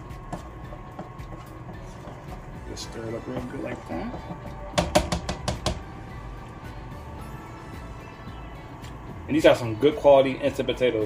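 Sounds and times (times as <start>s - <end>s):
spoon knocking against a pan: 0.2s - 2.6s, 3.2s - 5.9s.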